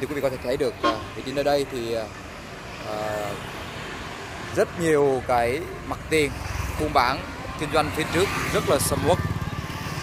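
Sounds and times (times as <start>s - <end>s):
road traffic noise: 0.0s - 10.0s
motor scooter passing: 5.9s - 10.0s.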